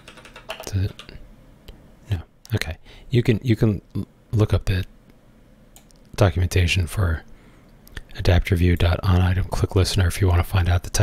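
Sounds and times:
computer keyboard key clicks: 0:00.0 - 0:01.1.

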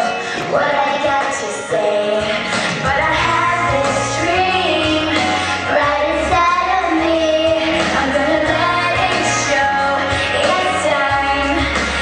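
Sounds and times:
backing music with steady beat: 0:00.0 - 0:12.0
girl singing into microphone: 0:00.0 - 0:12.0.

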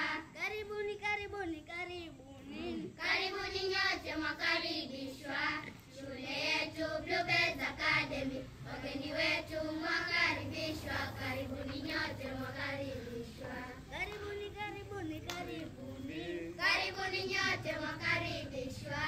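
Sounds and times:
children singing together: 0:02.5 - 0:19.0.

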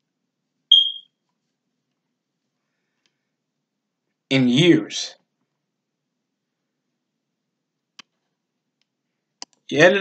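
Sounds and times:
short high electronic beep: 0:00.7 - 0:01.1.

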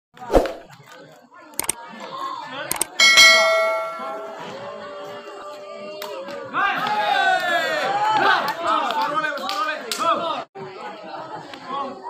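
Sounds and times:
short clicks: 0:01.6 - 0:01.8, 0:02.7 - 0:03.0
bright bell ding: 0:02.9 - 0:04.6.

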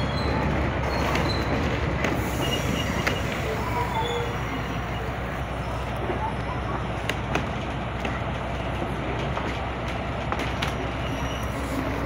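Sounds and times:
faint wheel squeals: 0:00.0 - 0:05.4, 0:10.6 - 0:12.0
train wheels rumbling on rails: 0:00.0 - 0:12.0.

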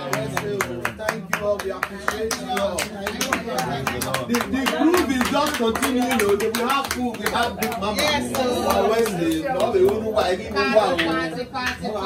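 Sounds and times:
people clapping in rhythm: 0:00.0 - 0:12.0.

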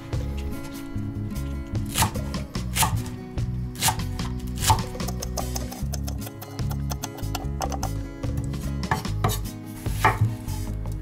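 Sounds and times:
background music: 0:00.0 - 0:11.0
knife chopping on wooden board: 0:01.9 - 0:02.2, 0:02.8 - 0:03.1, 0:03.8 - 0:08.0, 0:08.9 - 0:10.4.

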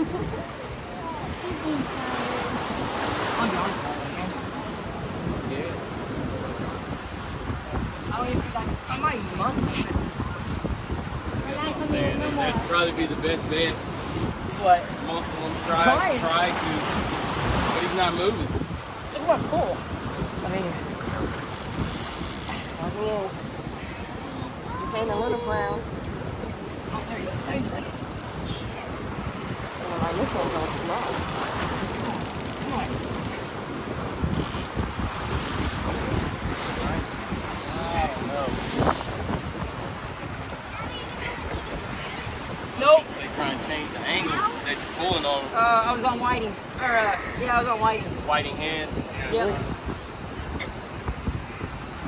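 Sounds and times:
surf: 0:00.0 - 0:52.0
wind on microphone: 0:00.0 - 0:52.0
faint voices: 0:11.3 - 0:33.5
indistinct talk: 0:40.0 - 0:49.8.

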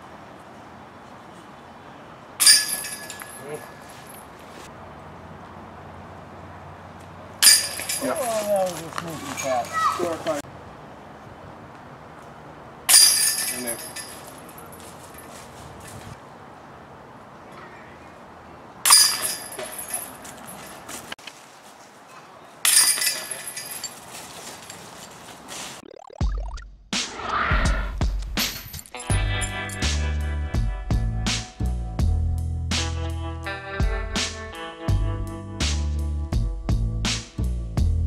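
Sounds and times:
disc hitting basket chains: 0:02.4 - 0:04.4, 0:07.4 - 0:09.8, 0:12.9 - 0:15.3, 0:18.8 - 0:21.0, 0:22.6 - 0:25.2, 0:28.4 - 0:29.9
music: 0:26.9 - 0:38.0
low swoosh: 0:27.0 - 0:28.2.

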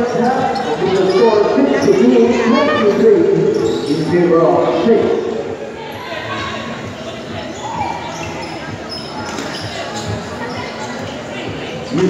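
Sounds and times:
shoe squeaks: 0:00.0 - 0:02.9, 0:03.5 - 0:04.3, 0:06.3 - 0:12.0.

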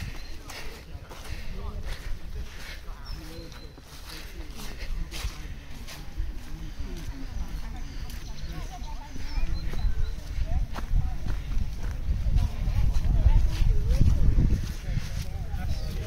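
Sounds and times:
footsteps on gravel: 0:00.0 - 0:16.0
indistinct chatter of walkers: 0:00.0 - 0:16.0
wind rumble on microphone: 0:05.1 - 0:16.0.

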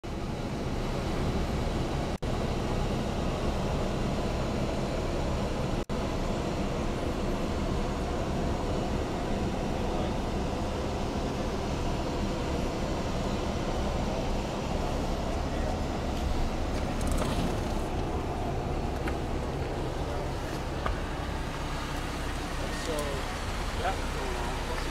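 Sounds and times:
steady rumbling background noise: 0:00.0 - 0:24.9.

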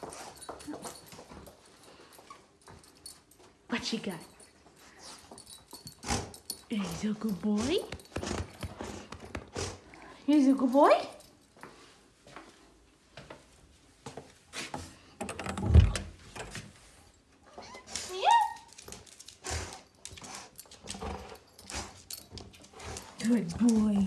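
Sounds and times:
dog moving about: 0:05.1 - 0:09.8.

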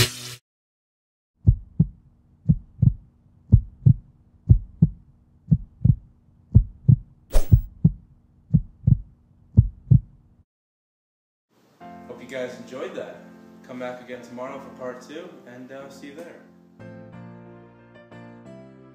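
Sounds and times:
heartbeat double beats: 0:01.4 - 0:10.2.

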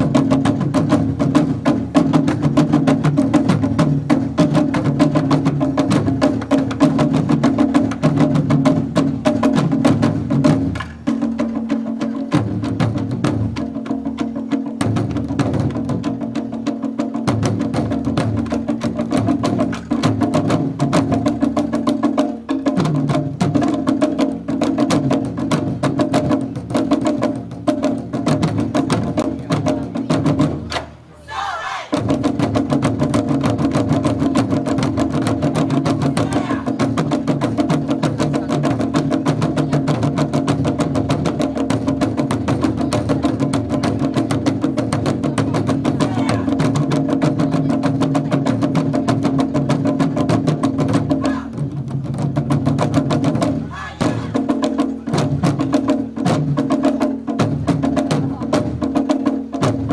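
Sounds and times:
taiko drums playing: 0:00.0 - 0:59.9.

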